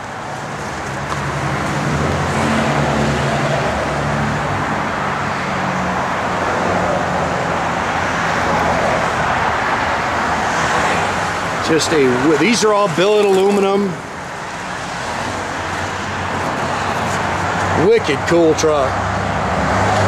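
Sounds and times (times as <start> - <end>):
broad rushing noise: 0.0 - 20.0.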